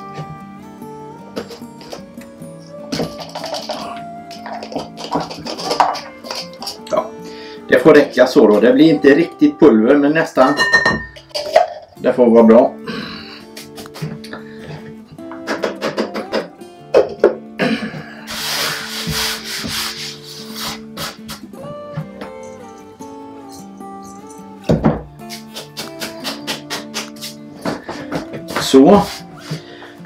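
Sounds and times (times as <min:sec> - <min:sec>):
background music: 0:00.0 - 0:30.0
hands rubbing dry powder: 0:03.2 - 0:06.8, 0:18.3 - 0:21.5.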